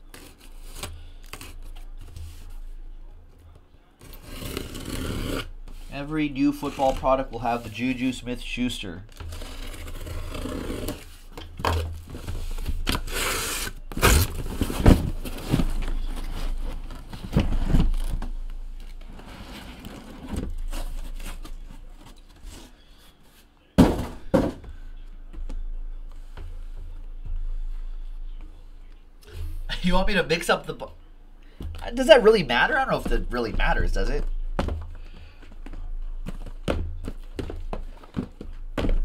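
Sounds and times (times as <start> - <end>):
cardboard scraping: 4.0 - 7.6, 9.2 - 11.3, 19.0 - 22.8.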